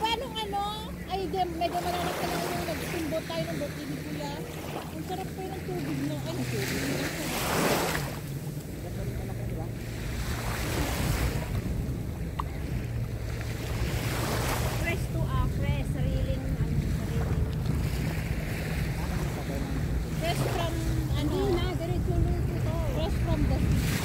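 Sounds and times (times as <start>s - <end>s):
low rumble: 0.0s - 24.0s
waves washing onto beach: 0.0s - 24.0s
wind buffeting microphone: 0.0s - 24.0s.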